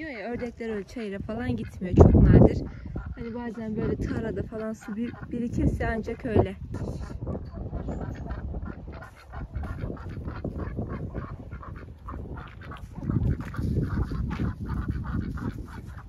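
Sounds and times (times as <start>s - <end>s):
ducks quacking: 0.0s - 16.0s.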